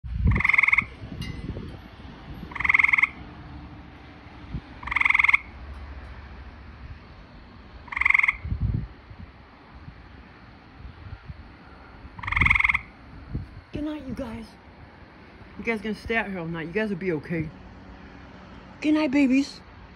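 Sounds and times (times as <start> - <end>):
frog calling: 0.2 - 1.0, 2.4 - 3.2, 4.7 - 5.7, 7.8 - 8.6, 12.1 - 13.0.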